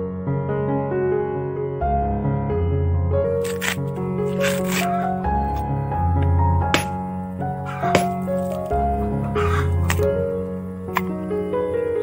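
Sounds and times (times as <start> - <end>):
instrumental background music: 0.0 - 12.0
coconut husk tearing: 3.4 - 5.6.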